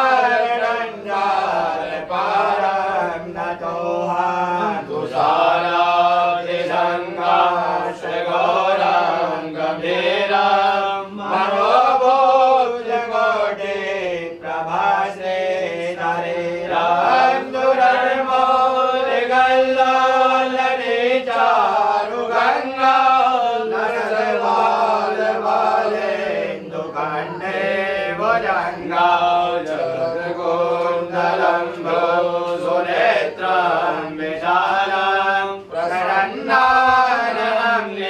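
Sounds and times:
devotional chanting: 0:00.0 - 0:38.0.

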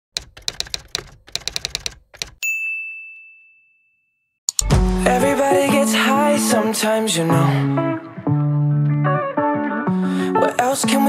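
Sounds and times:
high bell-like ding: 0:02.4 - 0:04.2
sharp clicks: 0:04.5 - 0:04.7.

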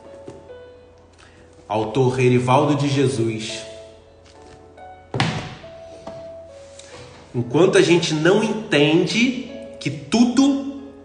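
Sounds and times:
soft background music: 0:00.0 - 0:11.0
book put down with a thunk: 0:04.4 - 0:06.3.

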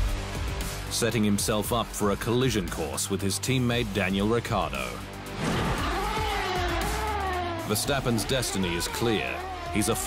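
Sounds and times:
background music with low bass: 0:00.0 - 0:10.0
racing car engine whine: 0:05.2 - 0:10.0.

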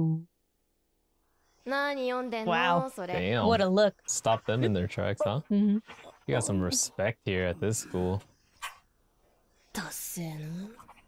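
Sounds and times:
person murmuring: 0:02.5 - 0:05.4, 0:06.3 - 0:08.2.

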